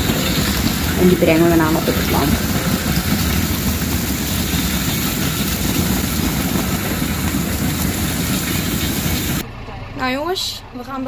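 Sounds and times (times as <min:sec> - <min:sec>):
conveyor machinery hum: 0:00.0 - 0:11.0
engine hum: 0:00.0 - 0:11.0.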